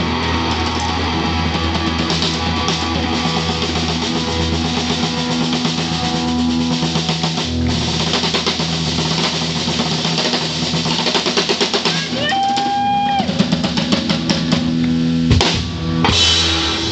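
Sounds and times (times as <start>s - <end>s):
bass guitar: 0.0s - 16.9s
drum kit: 0.0s - 16.9s
electric guitars: 0.0s - 16.9s.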